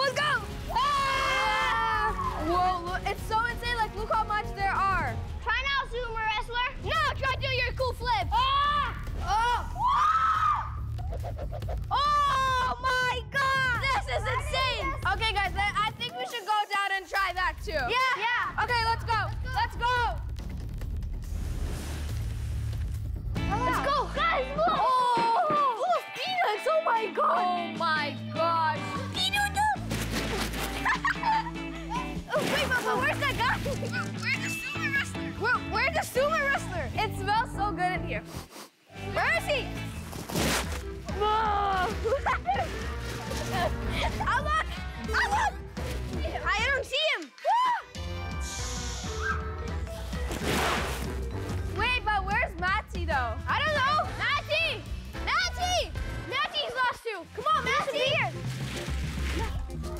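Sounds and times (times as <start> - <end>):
children shouting and laughing: 0.0 - 4.9, 5.5 - 17.3, 23.4 - 37.0, 41.1 - 50.2, 53.5 - 58.4
background music: 0.0 - 59.9
child squealing: 48.8 - 49.6.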